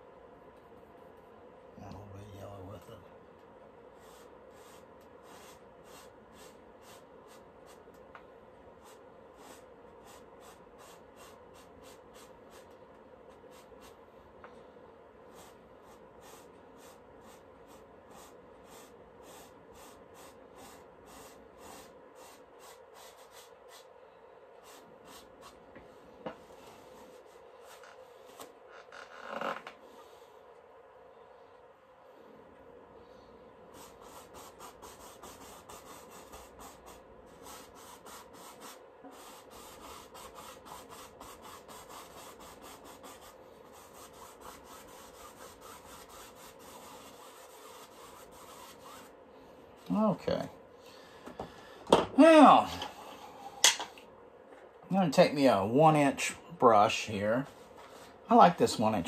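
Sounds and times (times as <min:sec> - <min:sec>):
low steady hum: 0:00.0 - 0:59.0
paintbrush scratching on canvas: 0:04.0 - 0:07.8, 0:08.8 - 0:14.0, 0:15.3 - 0:23.9, 0:33.7 - 0:49.2.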